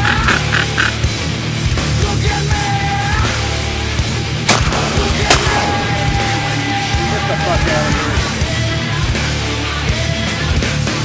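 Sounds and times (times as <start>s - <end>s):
heavy rock music: 0.0s - 11.0s
shotgun blast: 4.5s - 6.7s.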